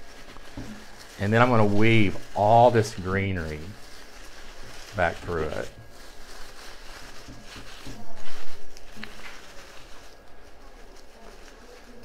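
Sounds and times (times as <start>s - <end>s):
artificial leaves rustling: 0.0s - 12.0s.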